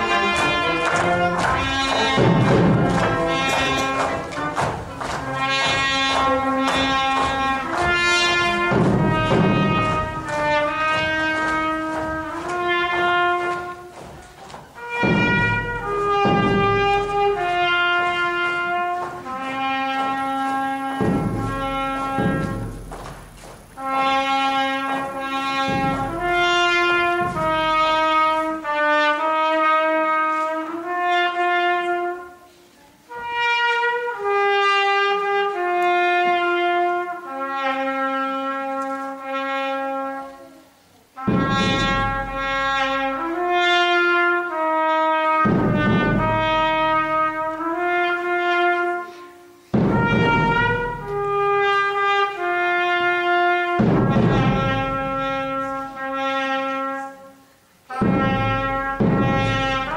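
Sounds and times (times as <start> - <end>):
low drum strokes: 0.0 - 28.4, 49.7 - 51.5, 58.0 - 59.9
brass band playing slow melody: 0.0 - 59.9.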